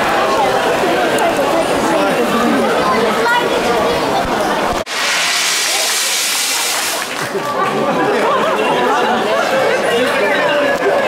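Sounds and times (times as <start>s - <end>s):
crowd voices: 0.0s - 11.0s
spray jet hissing: 4.9s - 7.2s.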